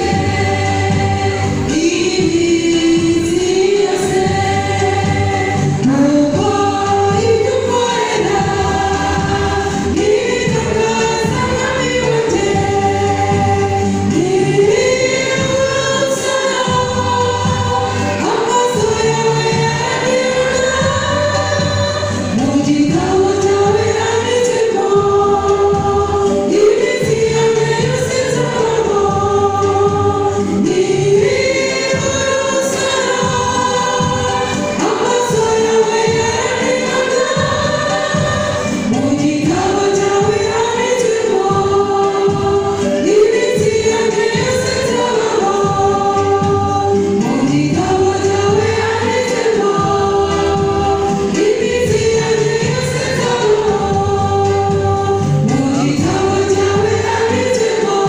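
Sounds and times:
church choir singing: 0.0 - 58.0.

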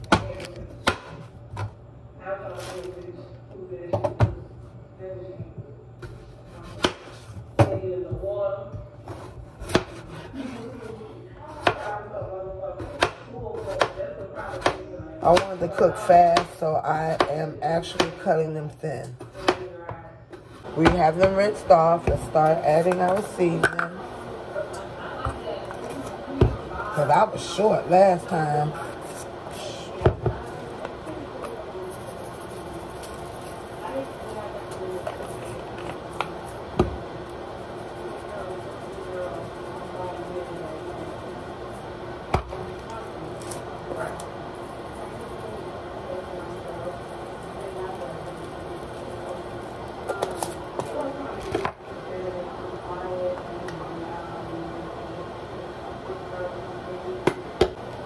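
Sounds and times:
seasoning shaken over potatoes: 30.4 - 36.7, 37.4 - 42.0, 42.9 - 51.0.

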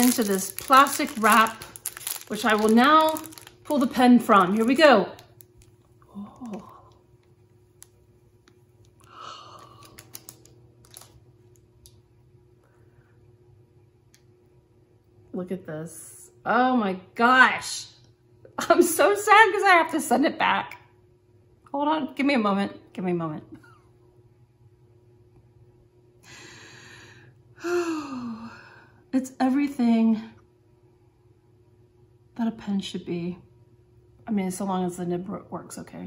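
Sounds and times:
plastic wrap crinkling: 0.0 - 6.9, 9.6 - 11.6
woman breathing in: 9.0 - 10.0, 26.2 - 29.0
woman sighing: 9.0 - 10.0, 26.3 - 29.0.

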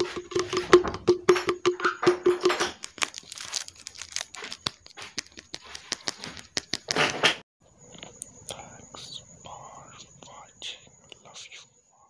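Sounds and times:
person whispering: 7.9 - 12.0.

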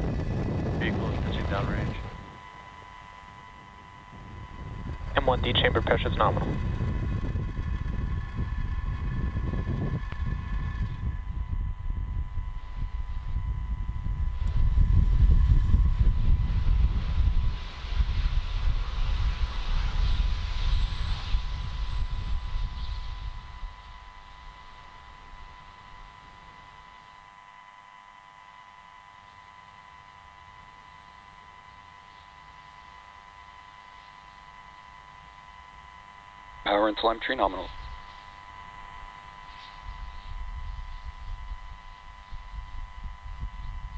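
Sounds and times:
rocket engines rumbling: 0.0 - 27.0, 29.1 - 43.9
faint steady high tone: 20.7 - 43.9.

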